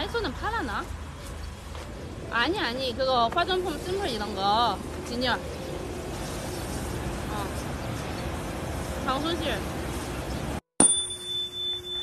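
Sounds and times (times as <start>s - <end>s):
street traffic: 0.0s - 12.0s
bell-like chime: 10.8s - 12.0s.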